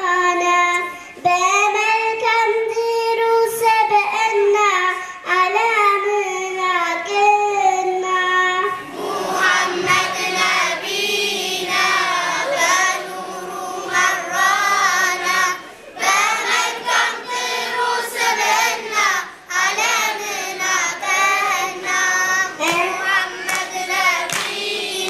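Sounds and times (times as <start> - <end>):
girl singing into a microphone: 0.0 - 8.8, 15.5 - 24.3
children singing in chorus: 8.6 - 25.0.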